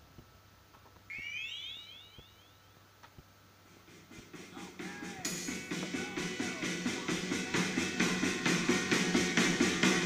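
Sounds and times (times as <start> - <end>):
short high rising chirps: 1.1 - 2.8.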